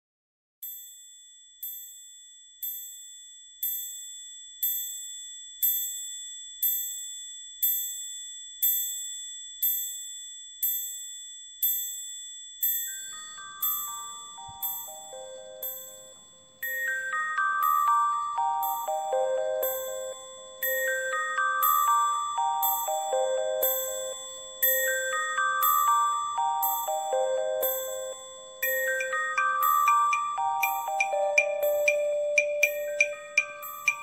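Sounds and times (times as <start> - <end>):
high bell-like chime: 0.6 - 34.0
lower chime notes stepping down: 13.9 - 34.0.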